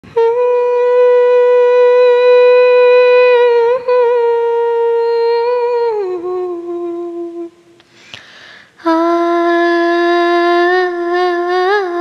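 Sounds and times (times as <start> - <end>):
woman humming: 0.0 - 7.8, 8.8 - 12.0.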